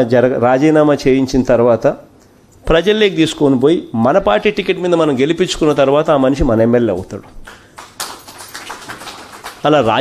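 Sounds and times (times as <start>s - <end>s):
steady noisy hiss: 0.0s - 10.0s
man speaking through microphones: 2.7s - 7.4s, 9.6s - 10.0s.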